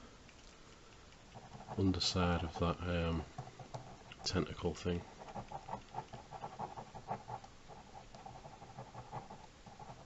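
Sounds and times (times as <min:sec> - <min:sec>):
pen scratching on paper: 0:01.3 - 0:10.0.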